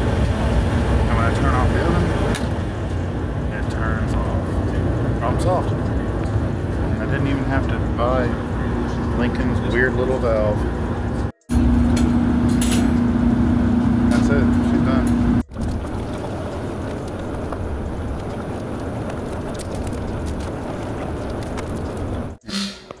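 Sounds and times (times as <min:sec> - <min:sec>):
oven blower noise: 0:00.0 - 0:22.4
oven humming with low tone: 0:00.0 - 0:22.4.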